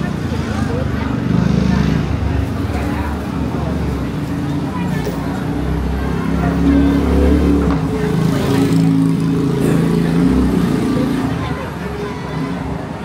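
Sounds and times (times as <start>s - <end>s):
street crowd chatter: 0.0s - 13.0s.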